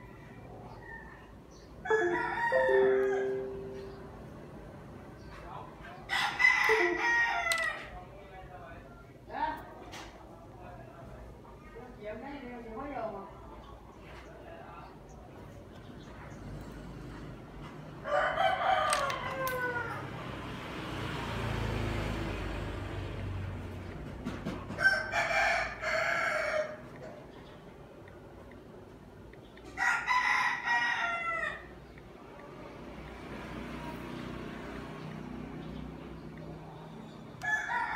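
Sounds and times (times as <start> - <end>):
rooster crowing: 1.8 - 3.8, 6.1 - 7.9, 18.0 - 20.3, 24.8 - 26.8, 29.8 - 31.7, 37.4 - 37.9.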